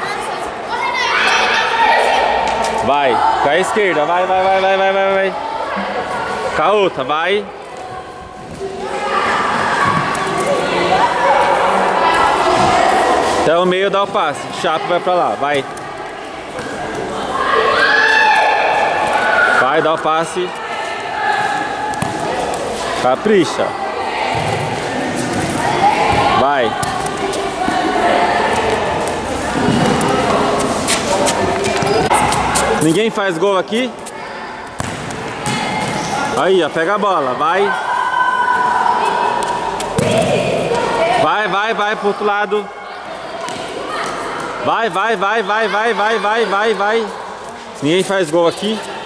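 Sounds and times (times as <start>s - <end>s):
children shouting and chattering: 0.0s - 49.0s
ball kicked and bouncing on concrete: 34.8s - 36.0s.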